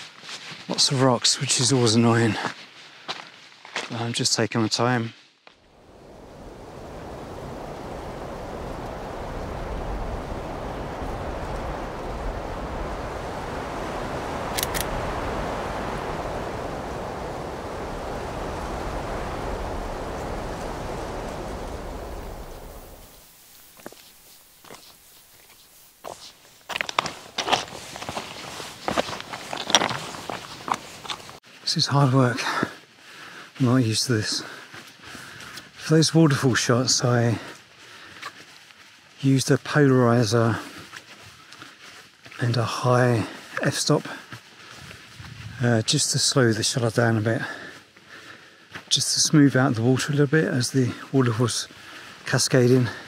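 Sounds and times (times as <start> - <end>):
footsteps on stony ground: 0.0 - 16.8, 22.7 - 50.5
steady rushing noise: 5.6 - 31.4.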